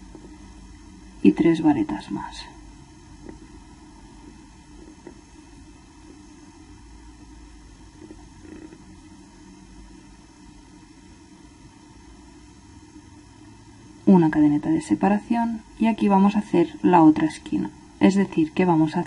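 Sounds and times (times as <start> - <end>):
faint hum: 0.0 - 19.0.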